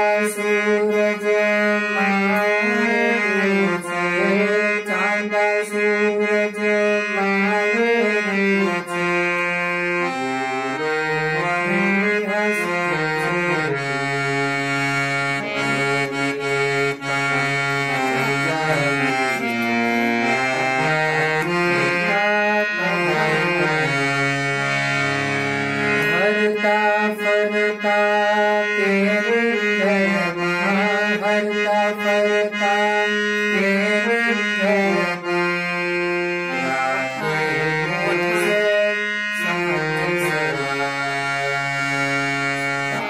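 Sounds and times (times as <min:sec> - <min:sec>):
harmonium melody: 0:00.0 - 0:43.0.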